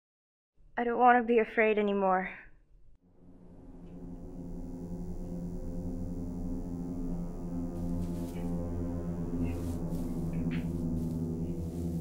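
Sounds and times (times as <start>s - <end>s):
low ambient drone: 3.0s - 12.0s.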